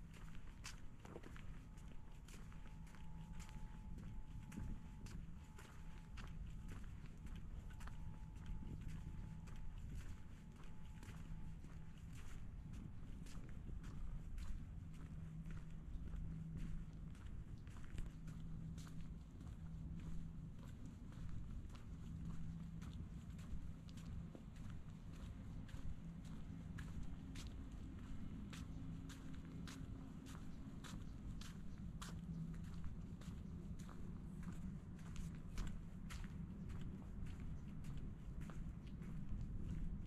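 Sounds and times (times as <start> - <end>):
footsteps on brick pavers: 0.0 - 40.0
steady low hum: 0.0 - 40.0.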